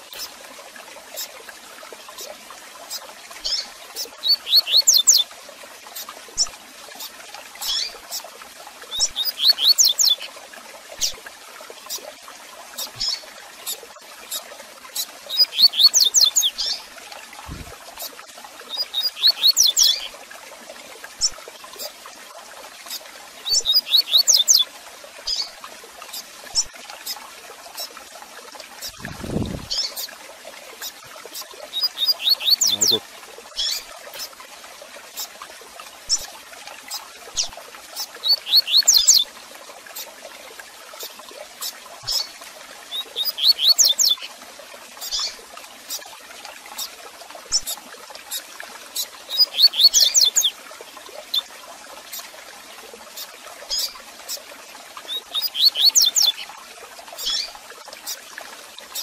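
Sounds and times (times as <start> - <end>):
trickling water: 0.0 - 59.0
bird chirps: 4.2 - 5.2, 23.5 - 24.6, 31.8 - 33.0, 38.3 - 39.2, 55.3 - 56.3
bird whistled song: 4.2 - 5.2, 15.4 - 16.6, 23.5 - 24.6, 31.8 - 33.0, 38.3 - 39.2, 43.1 - 44.3, 49.4 - 50.5, 55.4 - 56.3.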